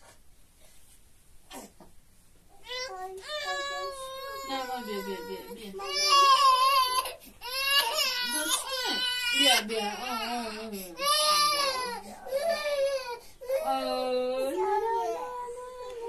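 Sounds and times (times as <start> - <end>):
infant crying: 2.7 - 14.0.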